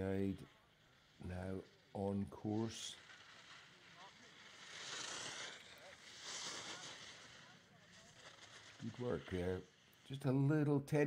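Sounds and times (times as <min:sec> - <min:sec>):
skis carving on hard snow: 0:00.0 - 0:10.8.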